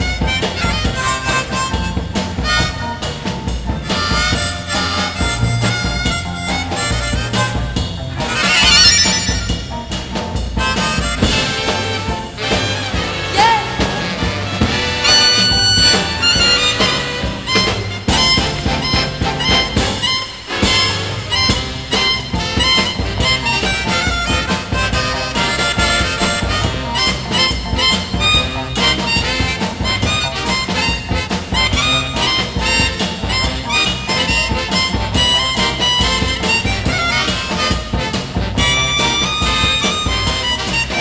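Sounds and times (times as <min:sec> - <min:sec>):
harmonica playing lead: 0:00.0 - 0:09.9, 0:10.6 - 0:41.0
live soul band: 0:00.0 - 0:41.0.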